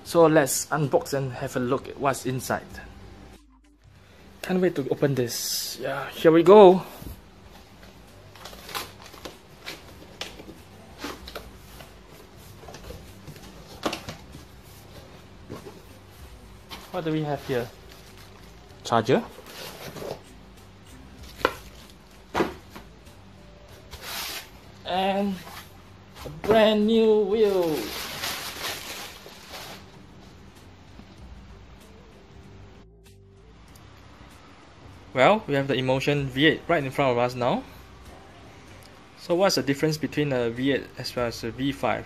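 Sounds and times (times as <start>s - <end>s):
cardboard rustles and scrapes: 19.2s - 20.2s, 23.9s - 24.5s, 27.4s - 29.9s
plastic bag crinkling: 27.4s - 30.0s.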